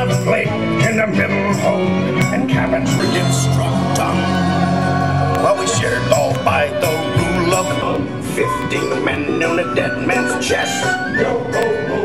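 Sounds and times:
folk song with guitar: 0.0 - 12.0.

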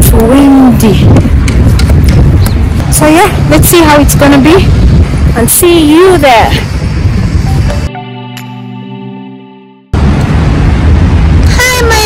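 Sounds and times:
wind buffeting microphone: 0.0 - 7.9, 10.0 - 12.0.

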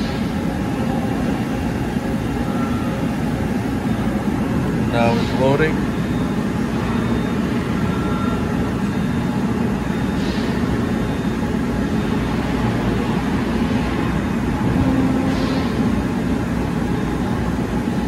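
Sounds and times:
mechanical hum and rumble: 0.0 - 18.0.

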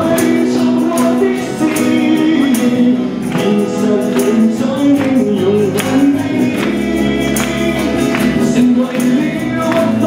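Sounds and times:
electric bass: 0.0 - 10.0
strummed acoustic guitars: 0.0 - 10.0
voices singing together: 0.0 - 10.0.

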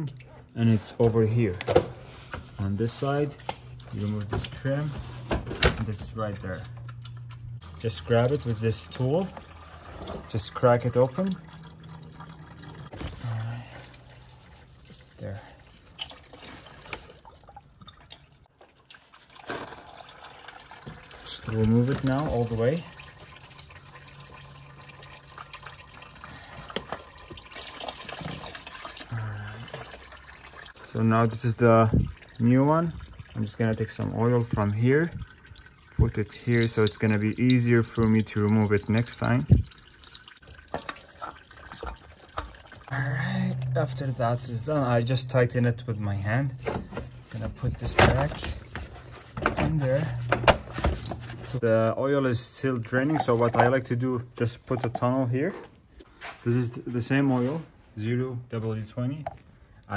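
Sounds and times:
oil trickling into bucket: 6.2 - 51.6.

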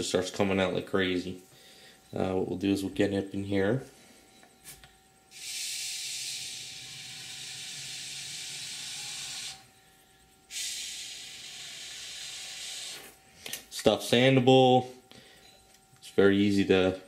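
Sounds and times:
aerosol foam can hissing: 5.3 - 9.6, 10.5 - 13.2.

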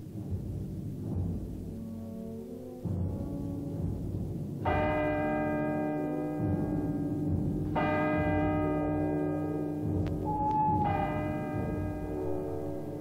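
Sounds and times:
church bell tolling: 4.6 - 13.0.

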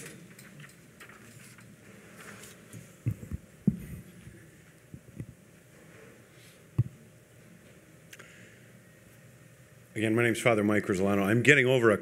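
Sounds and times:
faint room hum: 0.0 - 12.0
microphone handling thumps: 3.0 - 4.1.

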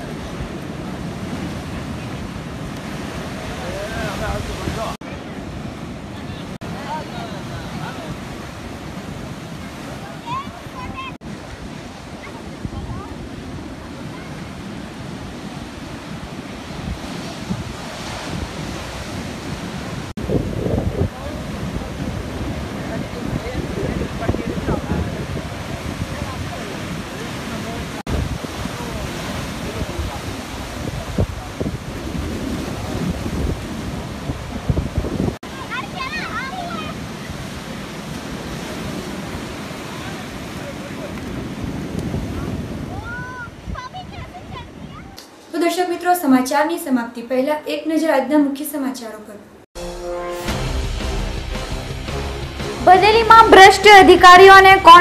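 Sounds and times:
wind buffeting microphone: 0.0 - 45.2
sea surf breaking on shore: 0.0 - 45.6.

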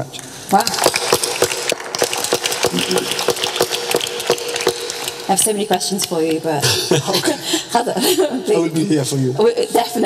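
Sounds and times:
audience applause: 0.7 - 5.4.

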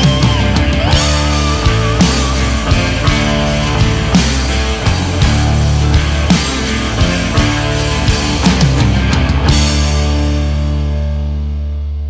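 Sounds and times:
heavy drum strikes: 0.0 - 11.0
rock song: 0.0 - 12.0.

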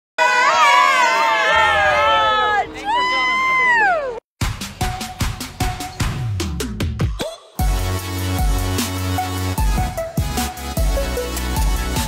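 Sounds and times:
group shouting and whooping: 0.2 - 4.2.

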